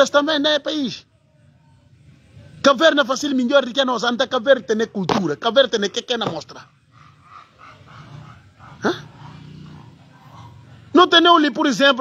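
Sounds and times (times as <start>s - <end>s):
person yelping: 8.8s - 9.1s.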